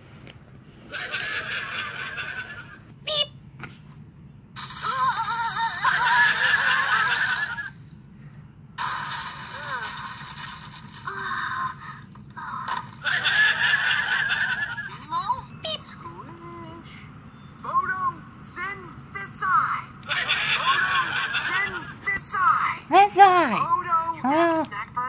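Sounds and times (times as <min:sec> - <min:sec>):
high cartoon character voices: 0:03.0 - 0:03.4, 0:04.6 - 0:07.7.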